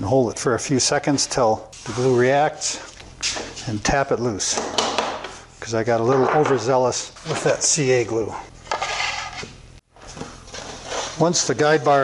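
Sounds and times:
board scraping across saw table: 0:08.7 - 0:09.5, 0:10.5 - 0:11.3.

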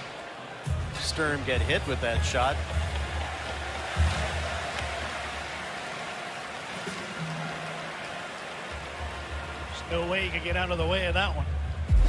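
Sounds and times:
crowd hubbub: 0:00.0 - 0:09.6.

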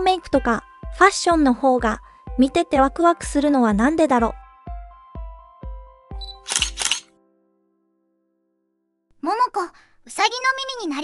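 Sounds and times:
background music with steady beat: 0:00.0 - 0:06.9
camera shutter double click: 0:06.2 - 0:07.1.

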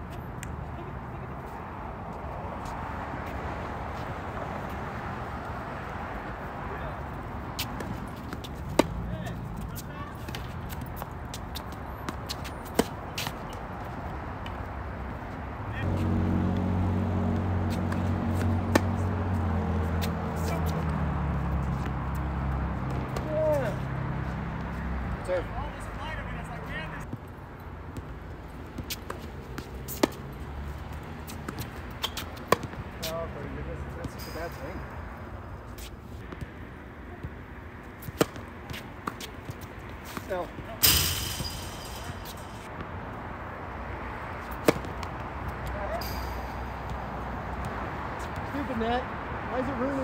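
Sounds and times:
court shoes squeaking: 0:07.1 - 0:16.1, 0:17.3 - 0:25.9, 0:27.0 - 0:43.0, 0:44.3 - 0:48.8
tennis ball hits: 0:07.6 - 0:13.7, 0:17.4 - 0:20.9, 0:28.7 - 0:30.3, 0:31.2 - 0:33.2, 0:38.0 - 0:42.9, 0:44.4 - 0:47.8.

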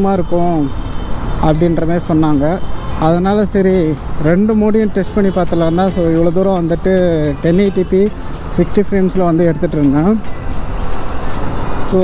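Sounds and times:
low rumble of road and wind: 0:00.0 - 0:12.0
person talking: 0:01.4 - 0:10.3.

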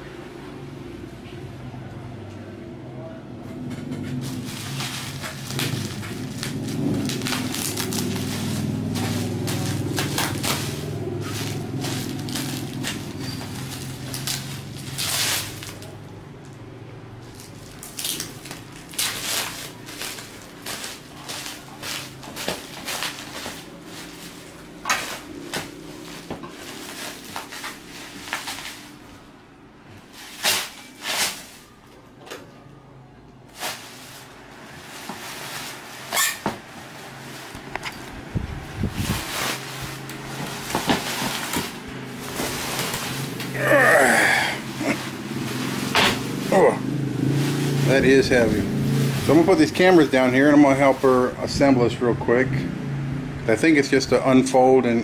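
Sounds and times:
bubble wrap crinkling: 0:04.2 - 0:16.6, 0:17.2 - 0:29.4, 0:30.0 - 0:31.8, 0:33.5 - 0:51.4
low voices murmuring: 0:42.3 - 0:45.5, 0:46.4 - 0:51.4.

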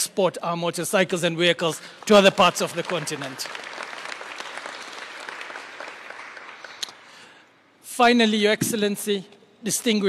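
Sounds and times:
audience applauding: 0:02.0 - 0:07.2.

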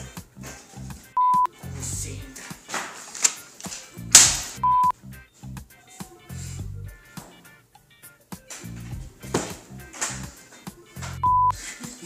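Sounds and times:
music: 0:00.0 - 0:12.0
high-pitched electronic beep: 0:01.2 - 0:01.5, 0:04.6 - 0:04.9, 0:11.2 - 0:11.6.

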